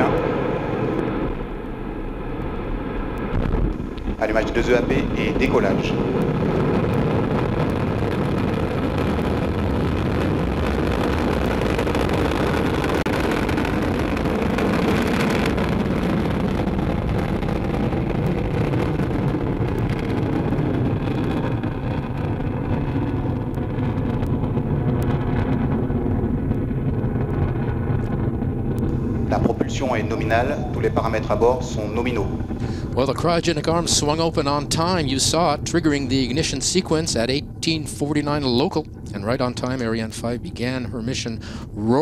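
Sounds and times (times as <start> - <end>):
deep rocket rumble: 0.0 - 42.0
rocket engines roaring: 0.0 - 42.0.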